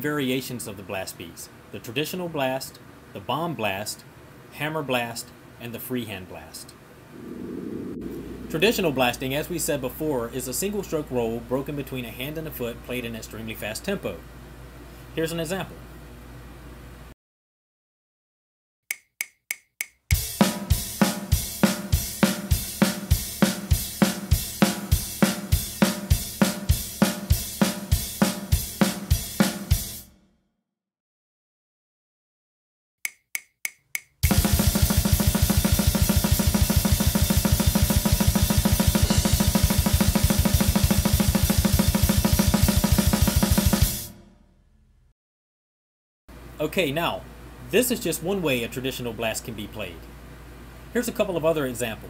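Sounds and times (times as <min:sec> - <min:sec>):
count-in clicks: 0:18.9 - 0:20.2, 0:33.1 - 0:34.3
drum kit blast beat: 0:20.0 - 0:30.1, 0:33.9 - 0:44.4.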